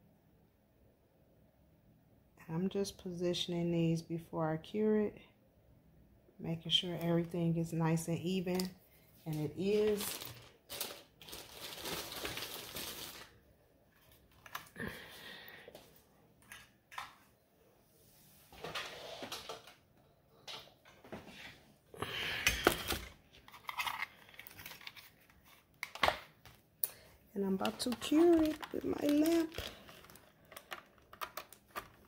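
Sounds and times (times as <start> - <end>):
craft materials rustling and crinkling: 8.4 - 17.3, 22.6 - 32.0.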